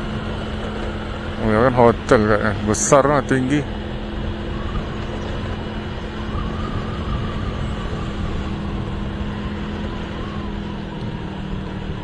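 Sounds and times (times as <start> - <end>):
motorcycle engine hum: 0.0 - 12.0
road and wind noise: 0.0 - 12.0.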